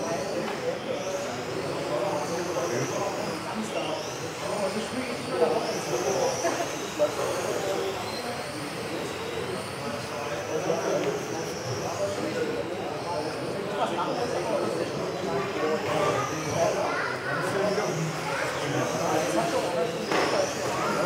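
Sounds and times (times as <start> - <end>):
model car motors whining: 0.0 - 21.0
murmur of voices: 0.0 - 21.0.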